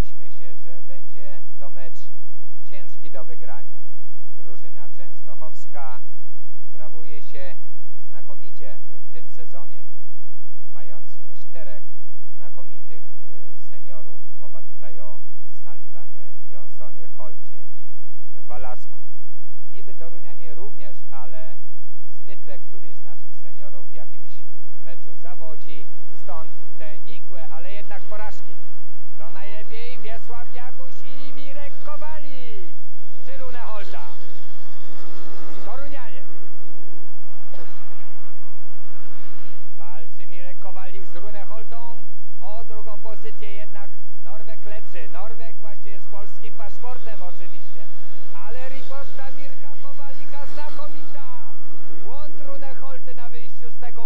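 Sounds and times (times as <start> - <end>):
motorcycles revving and racing: 23.6 - 54.0.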